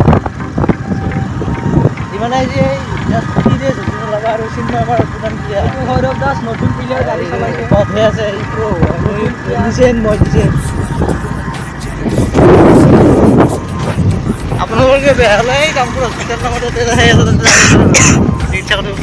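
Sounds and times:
music: 0.1s - 19.0s
person speaking: 2.8s - 12.4s
loud rush of noise: 8.5s - 19.0s.

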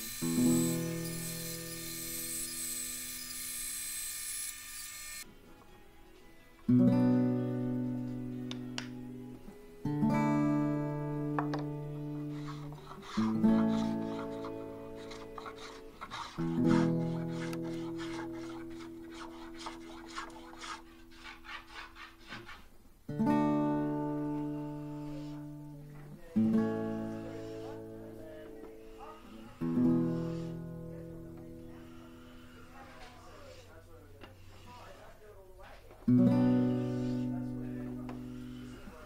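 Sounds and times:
bandsaw running: 0.0s - 5.2s
hand tool scraping wood: 12.3s - 22.7s.

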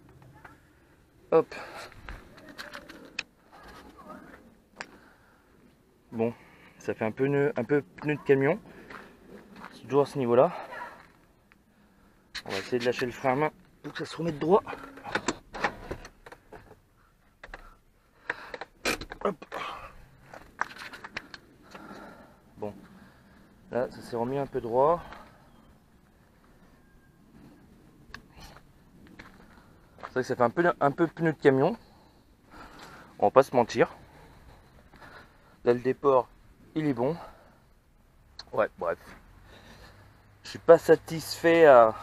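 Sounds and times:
footsteps on loose gravel: 8.8s - 9.9s, 28.4s - 30.5s.

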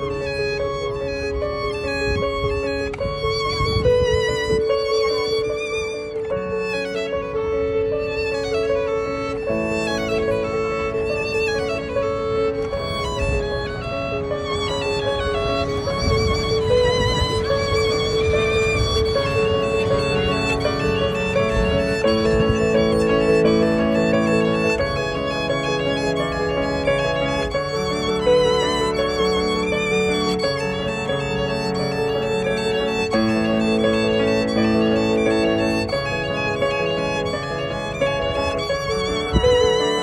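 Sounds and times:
digital piano accompaniment: 0.0s - 40.0s
violin melody: 0.0s - 40.0s.

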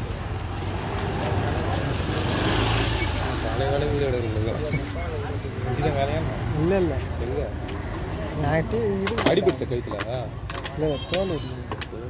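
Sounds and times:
scooter engine passing by: 0.2s - 7.2s.

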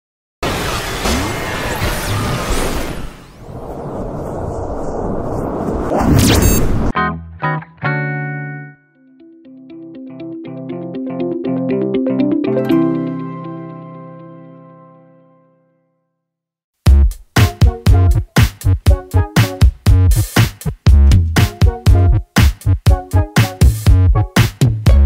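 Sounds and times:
noisy electronic sound effect: 5.8s - 6.9s
quick steady beat: 16.8s - 25.0s.

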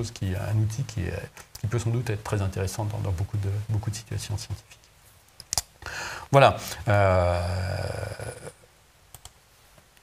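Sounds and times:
man hesitating: 6.8s - 8.7s
computer mouse clicks: 9.1s - 9.4s.

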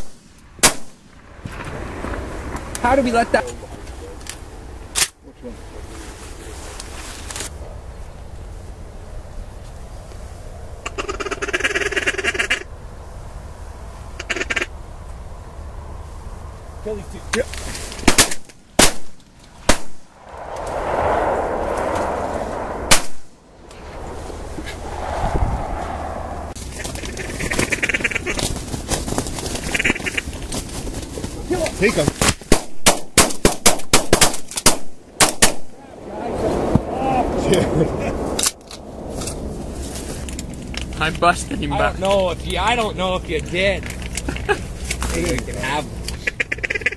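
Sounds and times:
shotgun blasts: 0.0s - 1.1s, 32.5s - 35.7s
duck call chattering: 10.8s - 12.7s, 14.2s - 14.7s, 27.0s - 28.4s, 29.6s - 30.4s, 46.1s - 46.9s.

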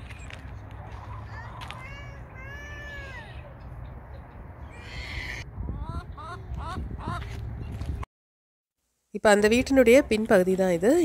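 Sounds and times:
chickens calling: 4.6s - 7.4s
chicken squawk: 4.8s - 7.2s.

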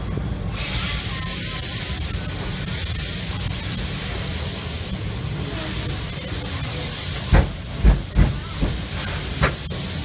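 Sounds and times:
steady hiss of steam: 0.5s - 10.0s
steam locomotive exhaust chuffs: 7.0s - 10.0s.

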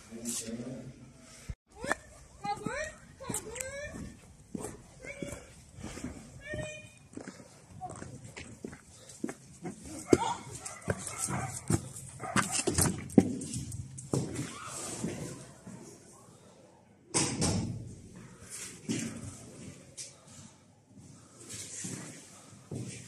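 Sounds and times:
footsteps and knocks on concrete: 1.9s - 14.5s.

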